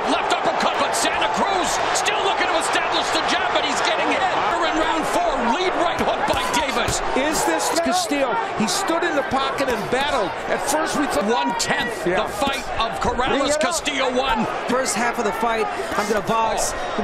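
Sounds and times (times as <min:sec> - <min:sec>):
people shouting: 0:00.0 - 0:17.0.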